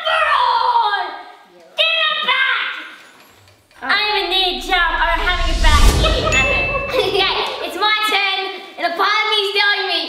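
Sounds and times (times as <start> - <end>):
low rumble: 3.8 - 7.8
bell-like ding: 5.0 - 7.7.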